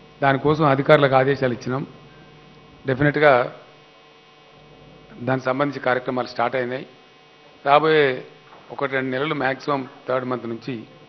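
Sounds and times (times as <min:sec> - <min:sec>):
faint electrical hum: 0:00.0 - 0:11.0
man speaking into a microphone: 0:00.2 - 0:02.0, 0:02.8 - 0:03.7, 0:05.1 - 0:06.9, 0:07.6 - 0:11.0.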